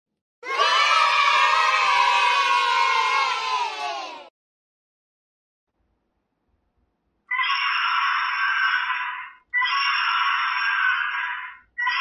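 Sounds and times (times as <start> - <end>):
shrill animal-like sound effect: 0.4 - 4.3, 7.3 - 12.0.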